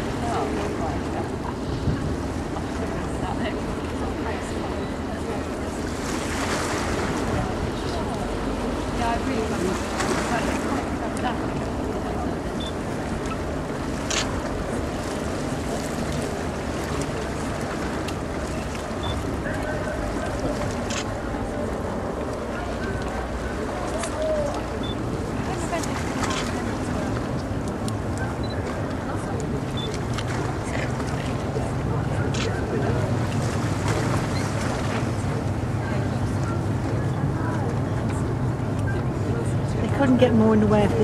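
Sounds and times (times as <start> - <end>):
water lapping: 0.0 - 41.0.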